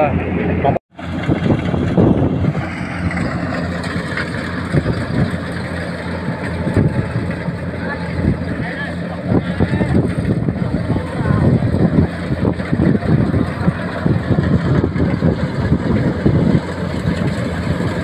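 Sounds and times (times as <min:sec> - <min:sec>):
people talking: 0:00.0 - 0:00.8, 0:06.1 - 0:16.1
distant combine harvesters running: 0:00.0 - 0:18.0
wind on microphone: 0:01.1 - 0:03.5, 0:04.1 - 0:08.6, 0:09.2 - 0:18.0.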